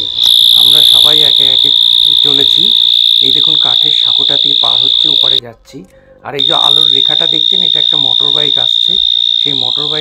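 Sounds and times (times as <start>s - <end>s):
high-pitched whine: 0.0s - 5.4s, 6.4s - 10.0s
man talking: 1.0s - 10.0s.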